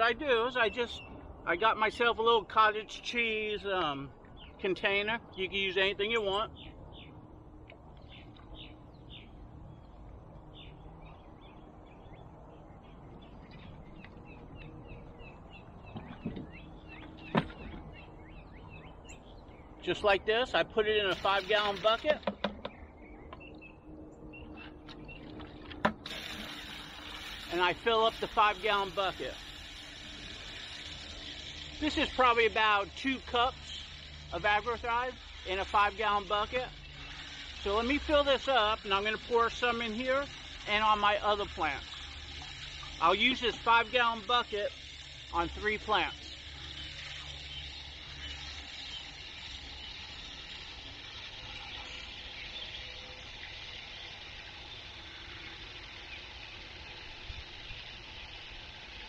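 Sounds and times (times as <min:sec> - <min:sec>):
water from hose filling plastic bucket: 0:20.8 - 0:22.6, 0:25.2 - 0:59.0.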